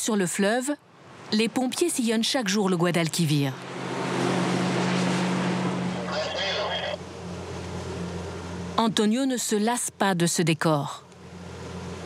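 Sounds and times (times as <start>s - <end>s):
motorboat engine humming: 0.8s - 12.0s
rushing and splashing water: 3.6s - 8.2s.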